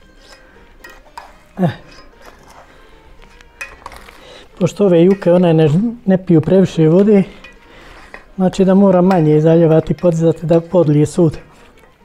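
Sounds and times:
metal pan and utensils clinking: 0:00.0 - 0:12.0.

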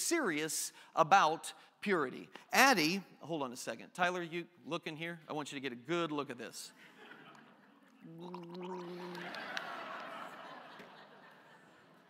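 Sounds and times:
man gargling water: 0:08.0 - 0:09.6.

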